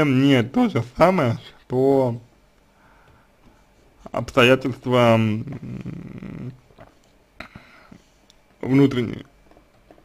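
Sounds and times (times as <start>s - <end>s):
man breathing: 2.7s - 3.8s, 7.4s - 8.3s.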